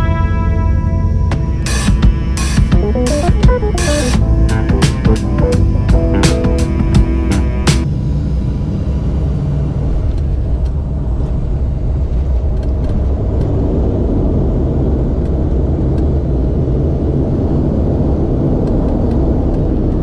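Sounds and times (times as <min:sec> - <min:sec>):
propeller engine drone: 0:00.0 - 0:20.0.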